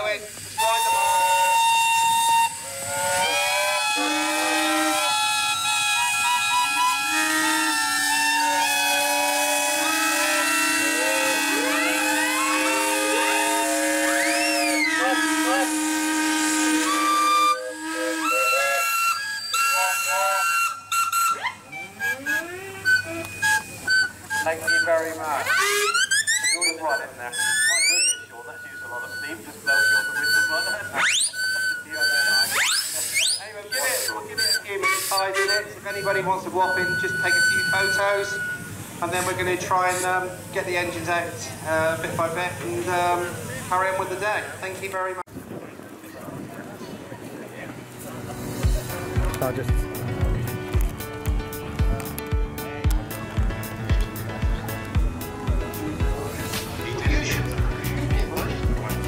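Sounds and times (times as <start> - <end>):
steam whistles: 0.0 - 45.0.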